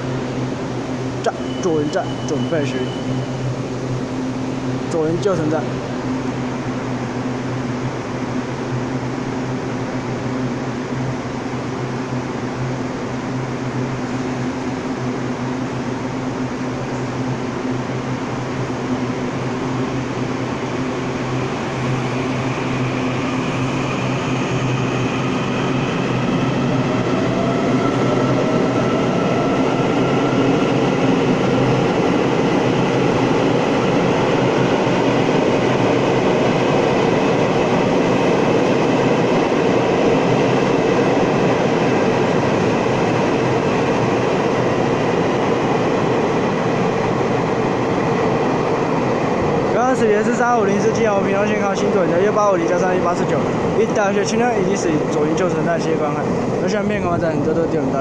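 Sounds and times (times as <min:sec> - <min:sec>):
train rumbling past: 0:00.0 - 0:58.0.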